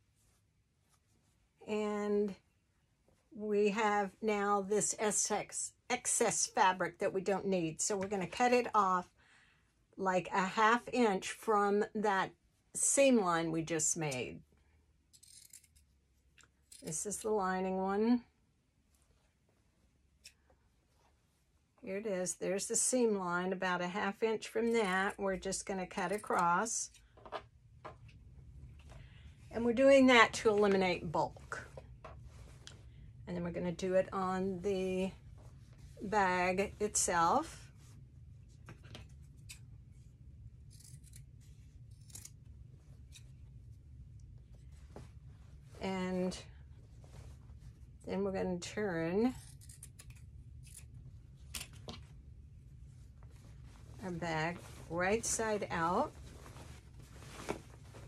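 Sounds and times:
faint rustling of fabric: 0.0s - 4.9s, 18.1s - 49.6s, 50.2s - 58.0s
woman speaking: 1.6s - 2.4s, 3.4s - 9.1s, 10.0s - 14.4s, 16.8s - 18.3s, 21.8s - 26.9s, 29.5s - 31.7s, 33.3s - 35.2s, 36.0s - 37.6s, 45.8s - 46.5s, 48.1s - 49.4s, 54.0s - 56.2s
scissors snipping fabric: 15.1s - 15.9s
scissors snipping cloth: 41.9s - 42.4s.

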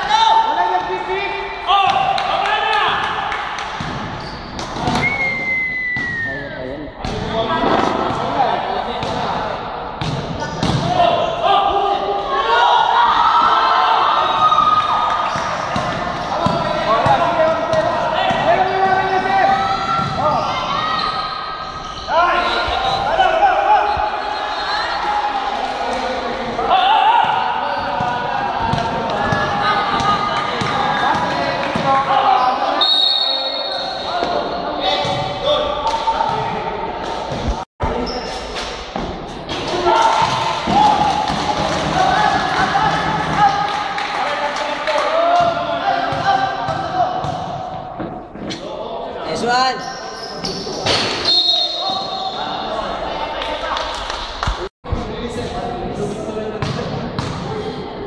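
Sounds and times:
people calling and shouting: 0.0s - 58.0s.

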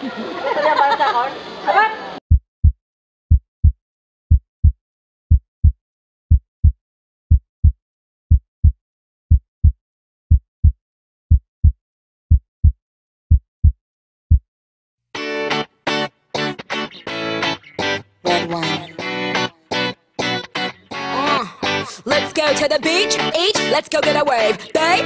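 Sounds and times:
heartbeat double thump: 2.3s - 14.5s.

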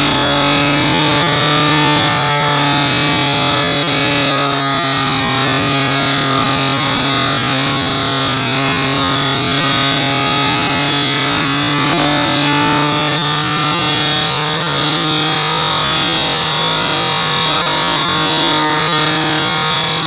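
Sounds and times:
string trimmer motor buzzing: 0.0s - 20.0s.

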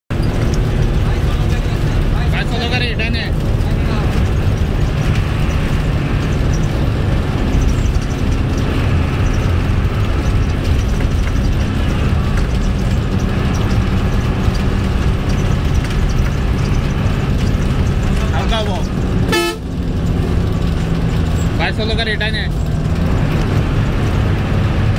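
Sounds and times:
bus engine drone: 0.1s - 24.9s
road noise: 0.1s - 24.9s
horn toot: 19.3s - 19.8s.

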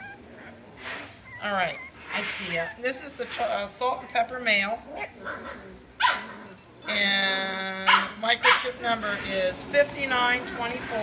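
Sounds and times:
puppy barking: 5.4s - 6.3s, 7.8s - 8.8s.

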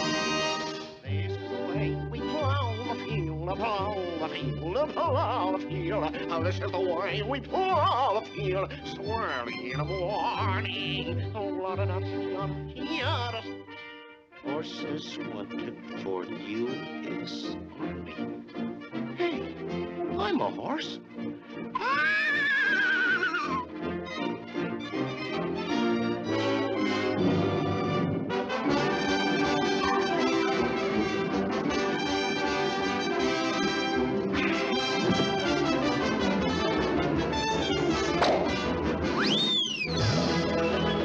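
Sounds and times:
trumpets and trombones chords: 0.0s - 3.2s, 13.3s - 21.8s, 23.6s - 39.3s, 39.9s - 41.0s
orchestral cartoon music with brass: 0.0s - 41.0s.

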